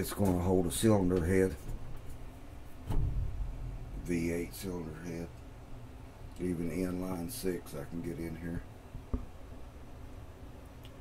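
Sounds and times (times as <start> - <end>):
dull thump: 2.8 - 4.1
low rumble: 2.9 - 6.2.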